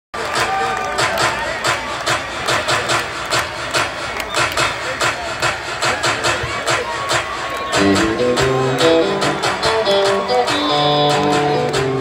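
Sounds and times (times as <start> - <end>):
live rock band: 7.4 - 12.0.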